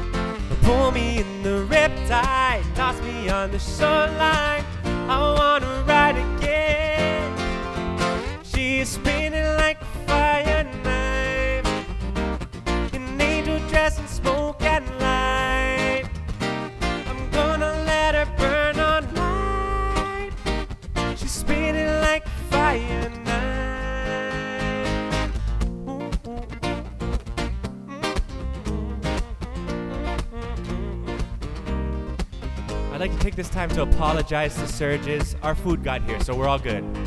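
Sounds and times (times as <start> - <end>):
bass guitar: 0.0 - 37.0
strummed acoustic guitar: 0.0 - 37.0
twelve-string guitar: 0.0 - 37.0
man singing: 0.5 - 12.0, 12.9 - 16.2, 16.9 - 27.0, 27.9 - 31.8, 32.9 - 37.0.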